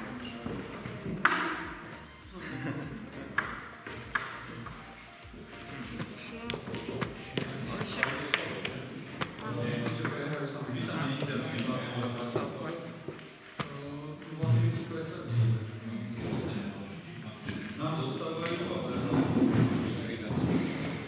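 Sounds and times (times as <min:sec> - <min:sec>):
chess pieces clicking on board: 0:06.0 - 0:10.2.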